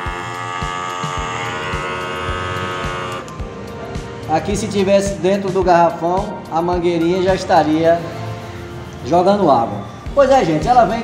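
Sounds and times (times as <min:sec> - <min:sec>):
small electric pump motor whine: 0:00.0 - 0:03.4
background music with steady beat: 0:00.0 - 0:11.0.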